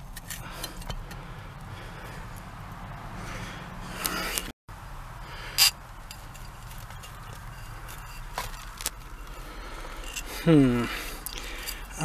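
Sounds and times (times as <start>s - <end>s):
soil scraping: 0.0s - 2.5s, 3.9s - 4.5s, 5.3s - 12.0s.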